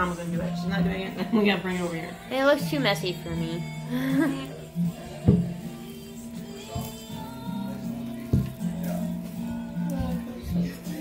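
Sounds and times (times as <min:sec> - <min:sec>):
christmas music with low notes: 0:00.0 - 0:11.0
person laughing: 0:03.9 - 0:04.6.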